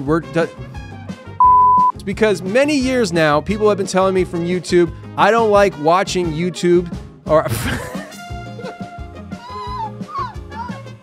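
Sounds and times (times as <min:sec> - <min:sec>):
background music: 0:00.0 - 0:11.0
man laughing wheezily: 0:07.5 - 0:08.9.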